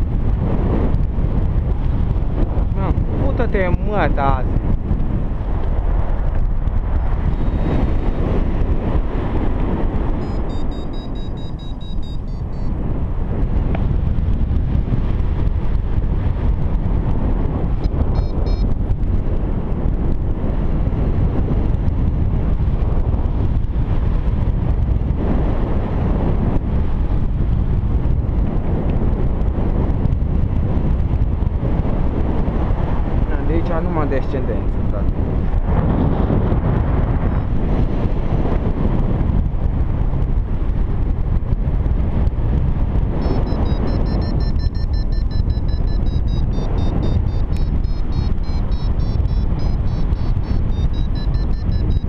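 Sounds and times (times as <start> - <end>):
wind buffeting microphone: 0.0 - 52.0
high electronic beeps: 10.2 - 12.7, 18.2 - 18.7, 43.2 - 52.0.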